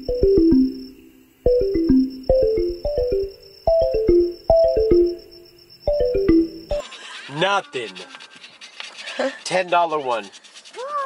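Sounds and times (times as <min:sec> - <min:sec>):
lottery ticket scratching: 0:06.8 - 0:11.0.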